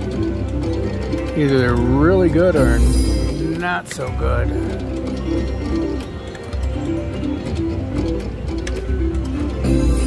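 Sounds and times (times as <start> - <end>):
slot machine spin music: 0.0 - 10.0.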